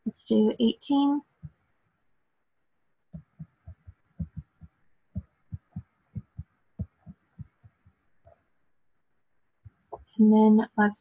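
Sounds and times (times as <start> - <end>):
stylus tapping on tablet screen: 3.1 - 8.5, 9.6 - 10.2.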